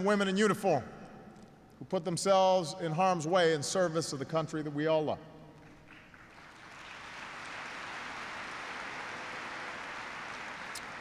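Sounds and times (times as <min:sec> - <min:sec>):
audience applause: 0:05.8 - 0:11.0.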